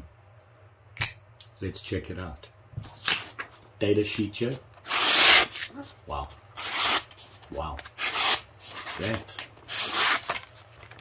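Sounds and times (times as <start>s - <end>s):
knife slicing paper: 4.8s - 5.7s, 6.6s - 7.2s, 7.9s - 10.5s.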